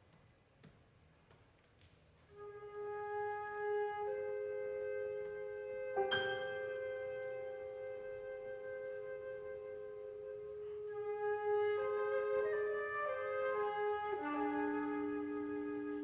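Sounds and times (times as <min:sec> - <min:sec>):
flute and clarinet duet: 0:02.3 - 0:16.0.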